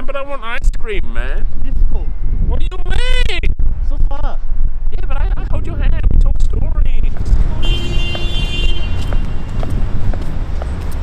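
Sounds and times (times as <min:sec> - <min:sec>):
road traffic rumble: 0:04.5 - 0:11.0.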